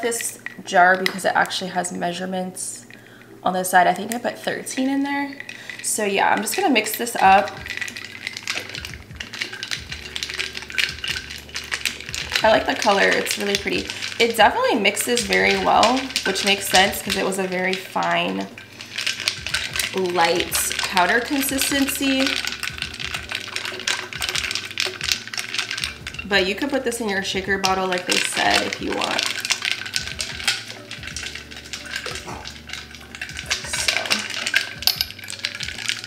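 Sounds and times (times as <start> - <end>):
spoon and ice clinking glass: 5.3 - 36.0.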